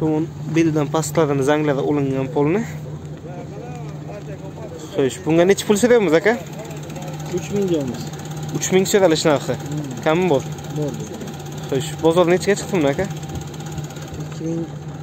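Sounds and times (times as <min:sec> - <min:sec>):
people talking: 0:00.0 - 0:13.2, 0:14.0 - 0:14.8
car engine idling: 0:00.0 - 0:15.0.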